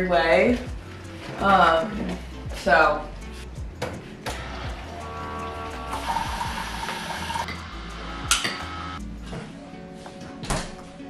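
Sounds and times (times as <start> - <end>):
background music with bass: 0.0 - 11.0
coffee maker hissing hum: 4.9 - 7.6.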